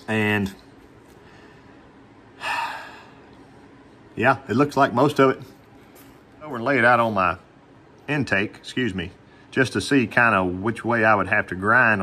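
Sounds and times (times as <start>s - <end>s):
man breathing out: 1.2s - 3.3s.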